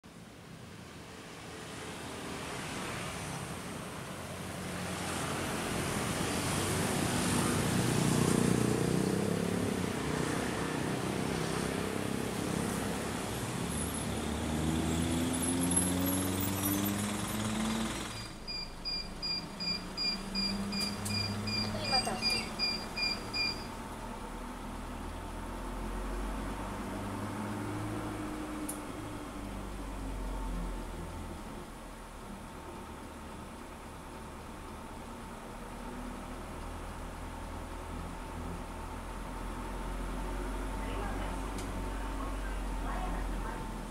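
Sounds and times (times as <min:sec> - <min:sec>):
passing motorcycles and cars: 0:01.1 - 0:18.2, 0:24.8 - 0:30.9
steady electronic beep: 0:18.1 - 0:23.8.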